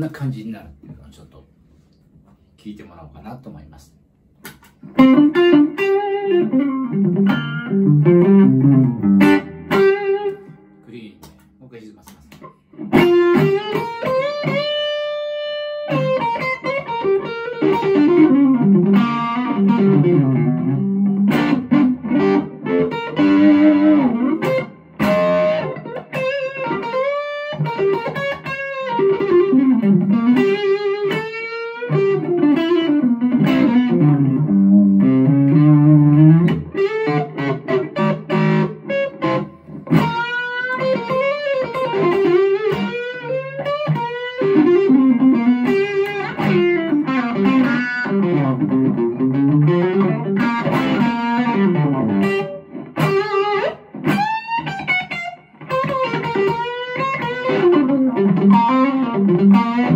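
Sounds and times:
distorted electric guitar lead: 0:04.6 - 0:11.3, 0:12.3 - 0:59.9.

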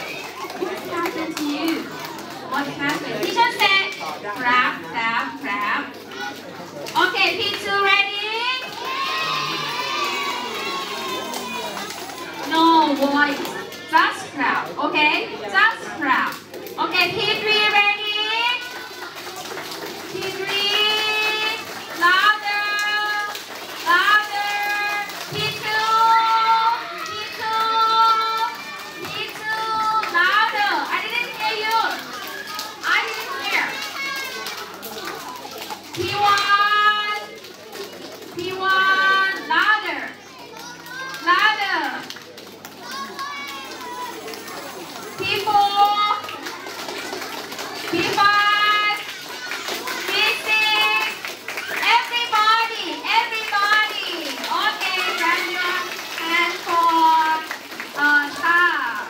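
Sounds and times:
young children calling and chattering: 0:00.0 - 0:59.0.

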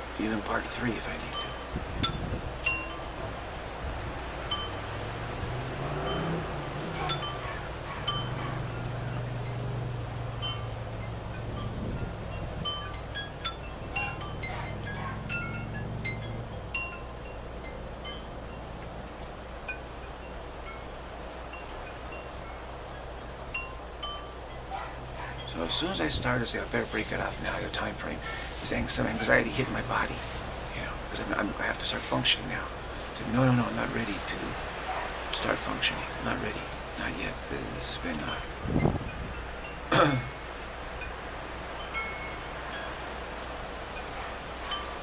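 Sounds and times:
wind chimes tinkling: 0:00.0 - 0:45.0.

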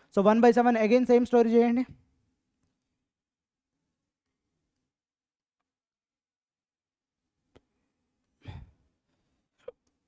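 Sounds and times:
sigh into microphone: 0:08.4 - 0:08.9.

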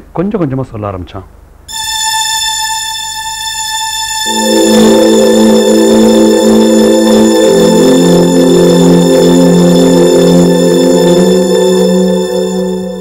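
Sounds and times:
low drone-like music chords: 0:01.7 - 0:13.0.

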